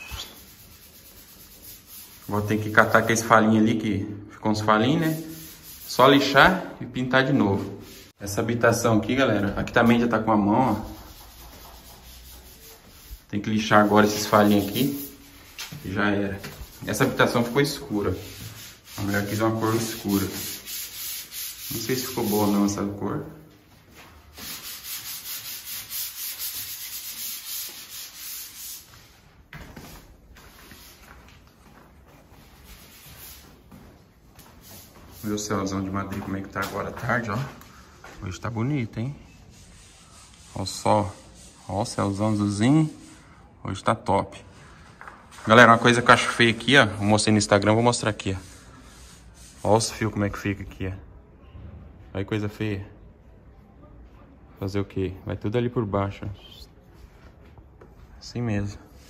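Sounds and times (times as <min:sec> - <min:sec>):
faint rubbing noise: 0:00.0 - 0:03.4, 0:04.9 - 0:06.6, 0:07.4 - 0:08.2, 0:09.6 - 0:43.2, 0:44.6 - 0:50.6.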